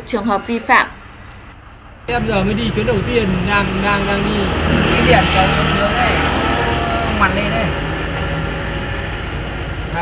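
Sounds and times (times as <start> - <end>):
road traffic noise: 0.0 - 10.0
man speaking: 2.1 - 7.8.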